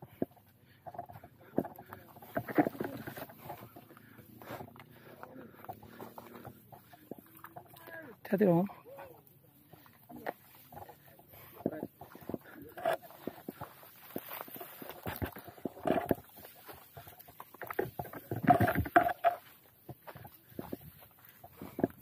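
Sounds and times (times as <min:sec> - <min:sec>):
footsteps in scrub: 0:09.2 - 0:22.0.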